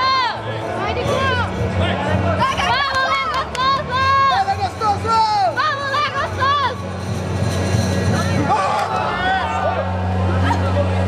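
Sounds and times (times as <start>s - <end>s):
crowd noise: 0.0s - 11.0s
spectators shouting: 8.4s - 11.0s.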